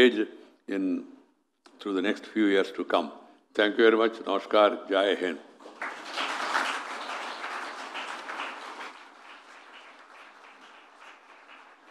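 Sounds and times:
audience applauding: 5.6s - 11.9s.

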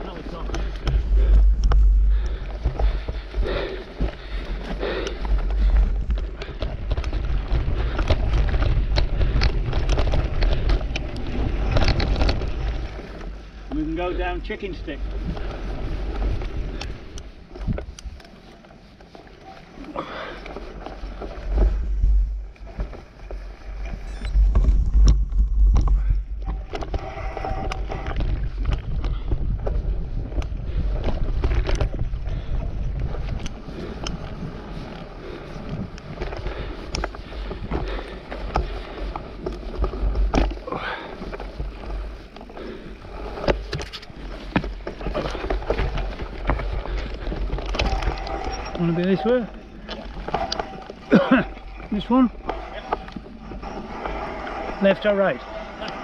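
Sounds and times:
wind buffeting microphone: 0.0s - 18.2s, 21.1s - 56.0s
bike rolling over gravel: 0.0s - 56.0s
bike knocks and rattles: 4.9s - 13.9s.

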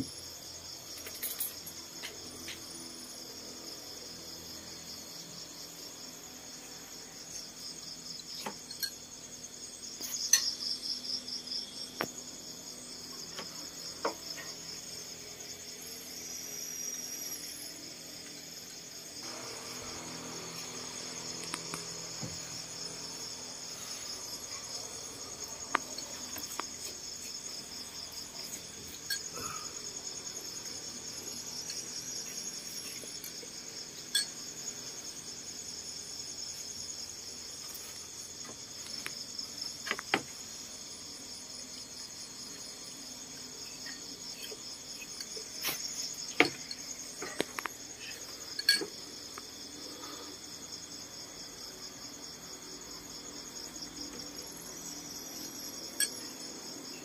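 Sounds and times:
night insects chirring: 0.0s - 57.0s.

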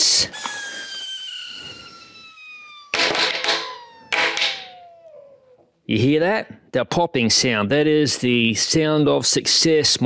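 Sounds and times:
air hissing into tyre: 0.3s - 2.7s.

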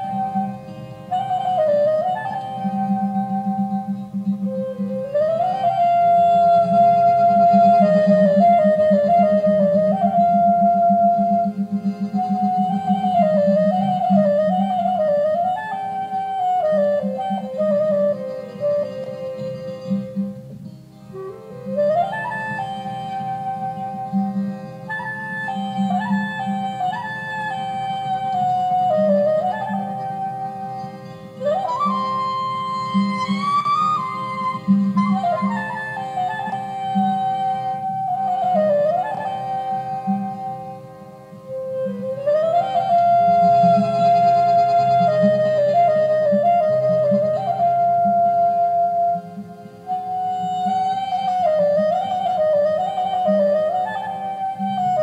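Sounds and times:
clarinet melody: 0.0s - 55.0s.

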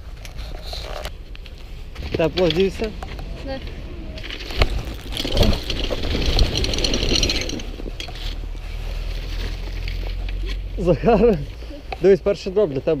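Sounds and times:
bicycle tyres on packed snow: 0.0s - 13.0s.

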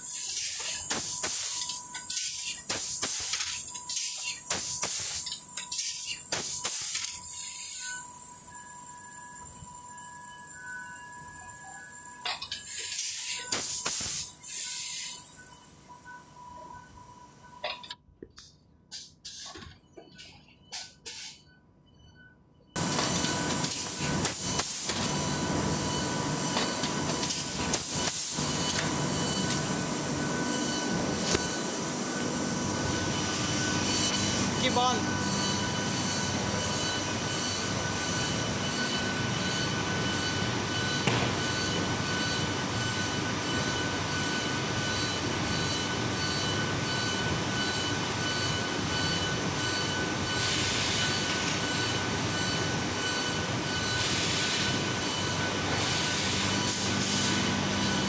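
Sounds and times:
thin steady whine: 0.0s - 58.0s.

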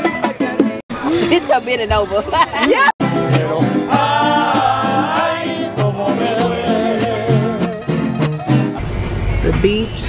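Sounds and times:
strummed guitars: 2.7s - 9.4s
plucked bass guitar notes: 3.0s - 10.0s.

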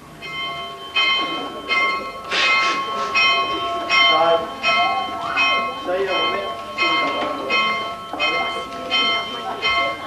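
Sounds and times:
church bell ringing: 0.0s - 10.0s.

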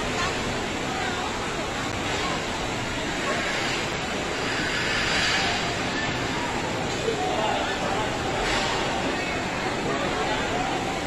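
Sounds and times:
rain: 0.0s - 11.0s
running water: 0.0s - 11.0s.

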